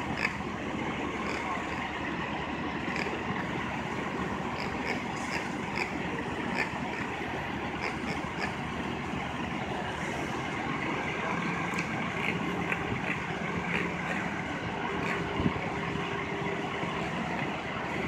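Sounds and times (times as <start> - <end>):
idling engine rumble: 0.0 - 18.0
low steady hum: 0.0 - 18.0
traffic: 0.0 - 18.0.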